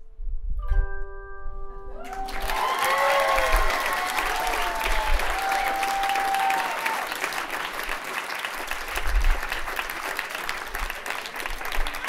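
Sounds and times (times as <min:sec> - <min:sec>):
audience applauding: 0:02.0 - 0:12.0
people cheering: 0:02.0 - 0:12.0.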